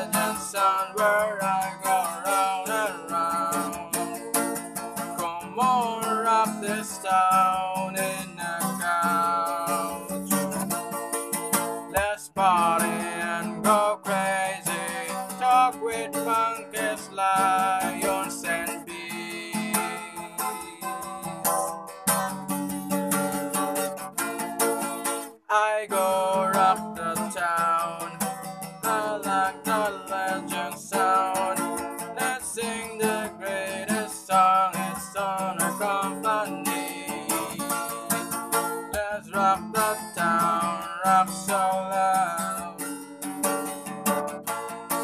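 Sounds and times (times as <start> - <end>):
person singing: 0.0 - 21.9, 25.4 - 43.6
acoustic guitar strumming: 0.0 - 45.0.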